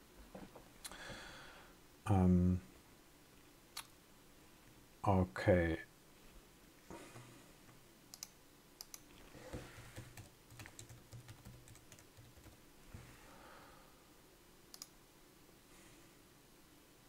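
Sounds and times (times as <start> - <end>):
computer keyboard typing: 8.2 - 12.6.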